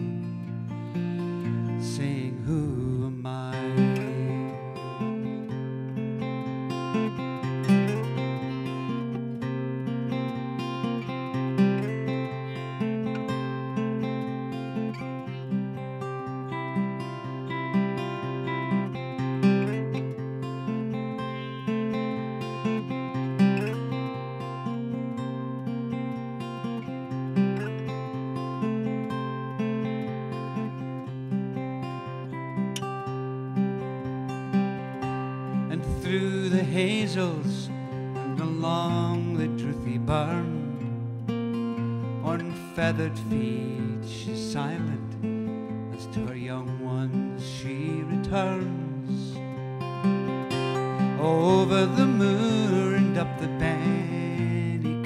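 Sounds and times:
solo acoustic guitar riff: 0.0s - 55.0s.

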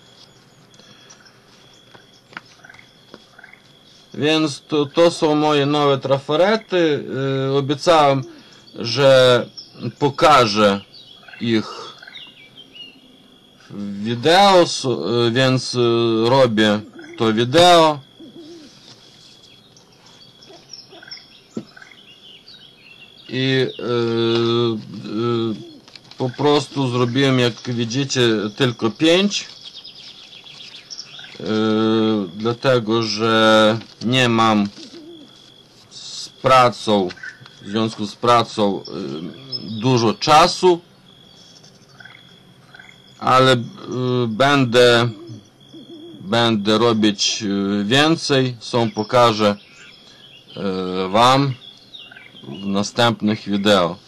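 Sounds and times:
high bird chirps: 0.0s - 5.8s, 8.0s - 13.8s, 16.7s - 17.4s, 18.0s - 33.3s, 34.4s - 37.8s, 38.4s - 46.6s, 48.7s - 54.0s
faint high-pitched whine: 0.0s - 54.0s
man making hesitation sounds: 4.2s - 10.8s, 11.4s - 12.0s, 13.6s - 18.1s, 23.3s - 29.6s, 31.3s - 35.0s, 35.9s - 40.8s, 43.2s - 45.5s, 52.4s - 54.0s
low hooting bird coos: 7.0s - 9.0s, 16.6s - 19.4s, 20.0s - 22.0s, 23.3s - 27.2s, 34.5s - 36.0s, 38.7s - 40.0s, 41.6s - 46.6s.

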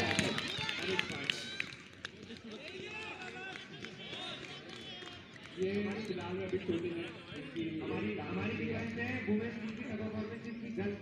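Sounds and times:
players calling and shouting: 0.0s - 11.0s.

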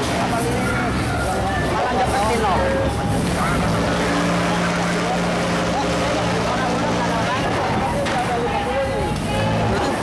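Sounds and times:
engine running with low drone: 0.0s - 10.0s
people's voices: 0.0s - 10.0s.

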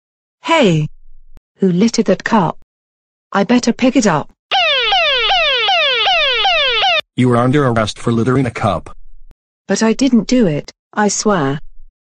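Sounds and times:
police siren sweeping: 4.5s - 7.0s.

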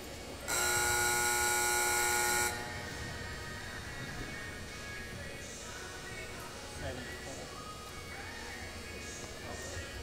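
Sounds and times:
buzzer horn tone: 0.5s - 2.8s.

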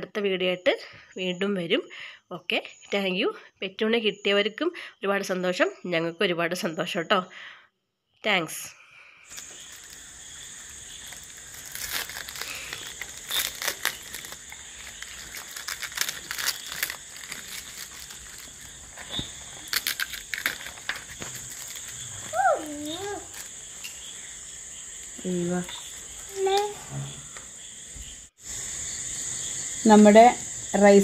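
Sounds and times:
paper and cardboard crinkling: 9.3s - 23.6s.

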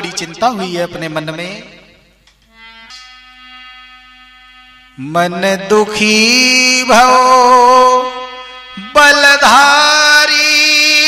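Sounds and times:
harmonium holding a note: 0.0s - 11.0s.

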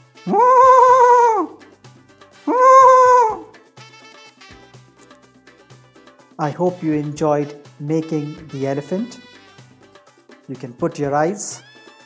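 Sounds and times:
faint background music: 0.0s - 12.0s
elephant trumpeting: 0.2s - 1.6s, 2.5s - 3.5s.

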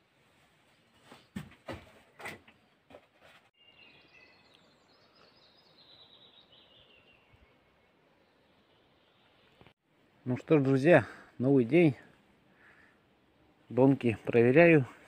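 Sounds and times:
birds chirping and singing: 3.6s - 9.6s.

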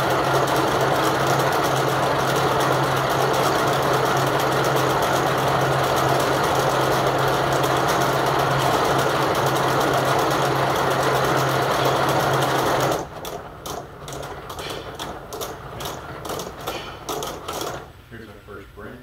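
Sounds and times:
braiding machine rattling: 0.0s - 18.0s.

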